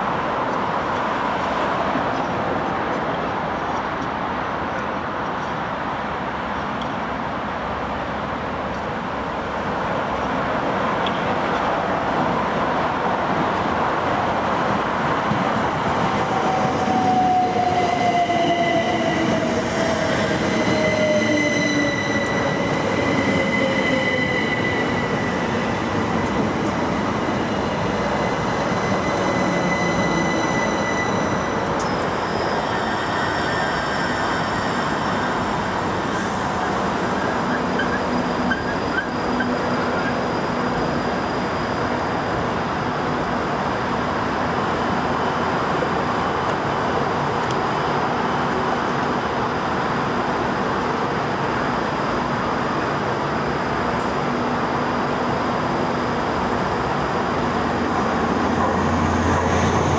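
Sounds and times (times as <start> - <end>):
electric train slowing to a stop: 11.0 - 59.9.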